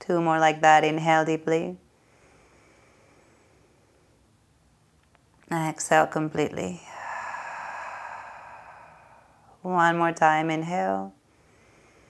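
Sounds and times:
woman exhaling: 0:06.8 - 0:09.7.

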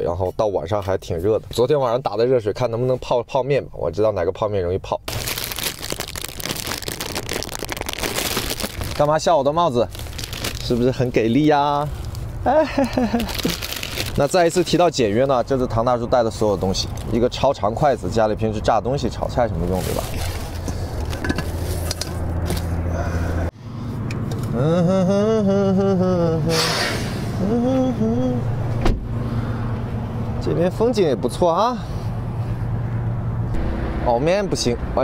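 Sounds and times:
crinkly foil packet rustling: 0:05.1 - 0:15.1, 0:19.6 - 0:21.8
steady low rumble: 0:05.1 - 0:35.0.

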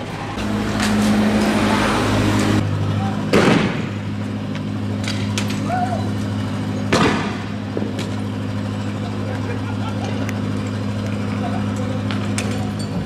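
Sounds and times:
truck engine running: 0:00.0 - 0:13.0
loud sharp bang: 0:03.3 - 0:04.1, 0:06.9 - 0:07.9.

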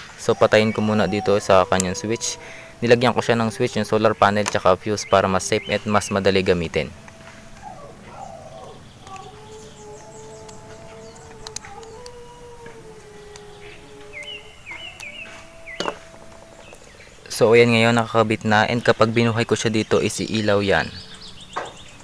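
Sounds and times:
bird chirping: 0:00.0 - 0:22.0
faint steady background tones: 0:00.0 - 0:22.0
wire connector clicks: 0:10.4 - 0:12.2.

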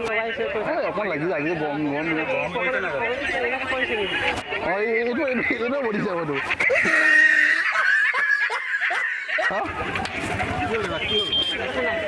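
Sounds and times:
person laughing: 0:06.6 - 0:09.9.

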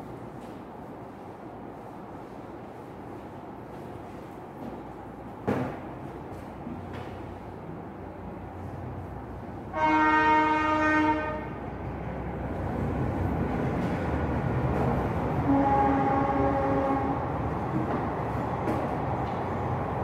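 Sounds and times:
horn blast: 0:09.7 - 0:11.6, 0:15.5 - 0:17.3.

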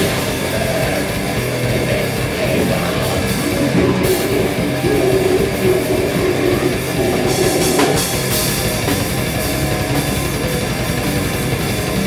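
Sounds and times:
drum kit: 0:00.0 - 0:12.0
electric bass guitar: 0:00.0 - 0:12.0.

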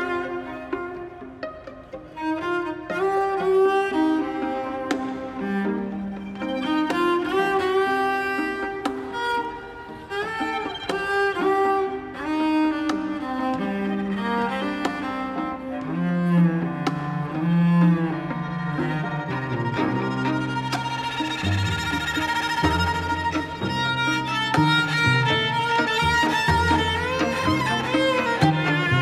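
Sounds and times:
loud low cello notes: 0:00.0 - 0:29.0
string quartet playing: 0:00.0 - 0:29.0.

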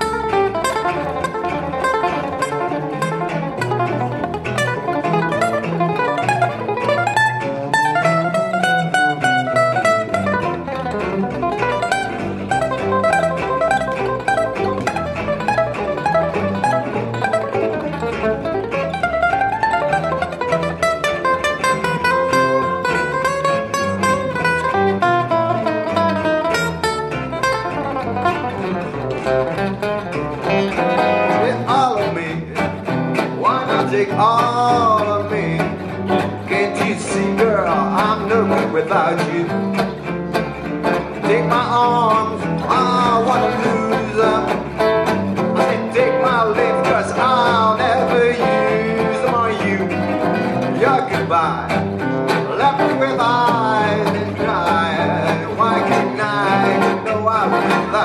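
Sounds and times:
acoustic guitar solo runs: 0:00.0 - 0:58.0
plucked double bass: 0:00.0 - 0:58.0
strummed rhythm guitar: 0:00.0 - 0:58.0.

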